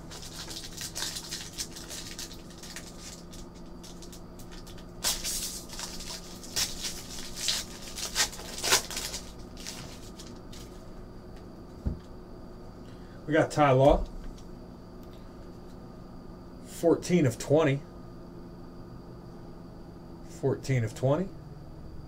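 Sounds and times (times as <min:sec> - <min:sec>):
wrapper rustling and crinkling: 0:00.0 - 0:10.9
steady low hum: 0:00.0 - 0:22.0.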